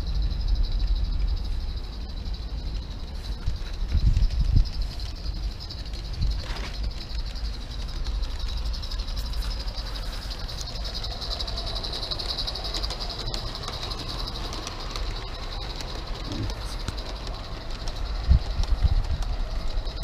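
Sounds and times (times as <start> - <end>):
model steam locomotive running: 0.0 - 20.0
steady high-pitched hiss: 0.0 - 20.0.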